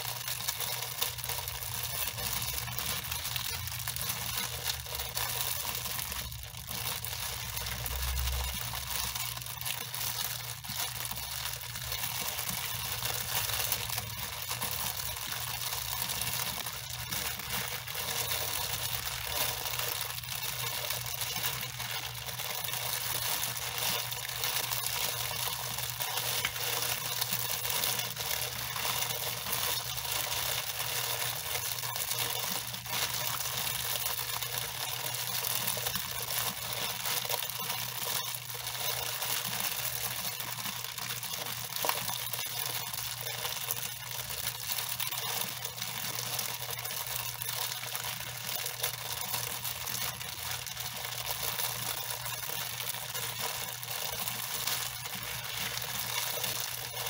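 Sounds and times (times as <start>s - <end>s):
shower water spraying on hair: 0.0s - 57.0s.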